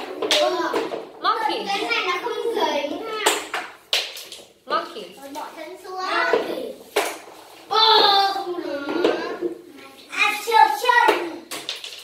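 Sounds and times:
children calling out: 0:07.7 - 0:09.5.

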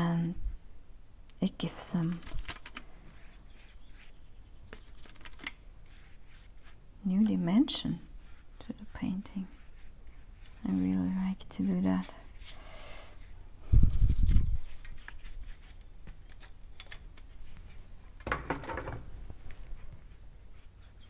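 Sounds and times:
brush and handling noises: 0:03.0 - 0:16.6.

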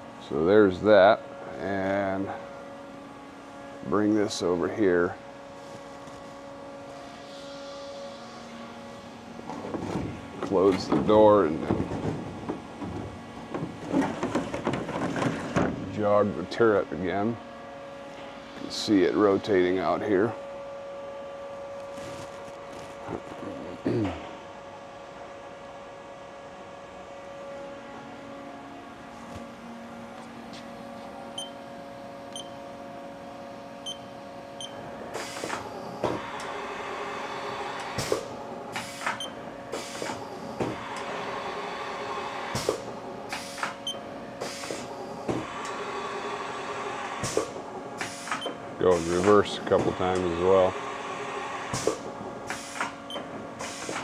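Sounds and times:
steady machine hum: 0:00.0 - 0:54.0.

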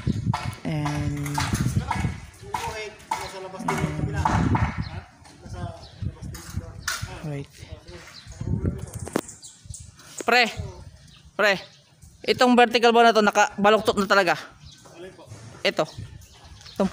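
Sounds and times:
sharp knocks: 0:00.3 - 0:05.1
people talking: 0:00.6 - 0:04.7.

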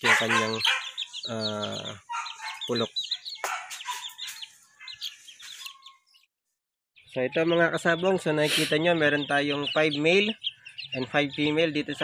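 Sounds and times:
chicks peeping: 0:00.0 - 0:06.3, 0:07.0 - 0:12.0.

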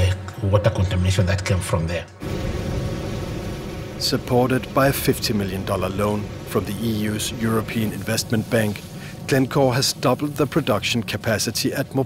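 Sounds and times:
smelter furnace industrial noise: 0:02.2 - 0:12.0.

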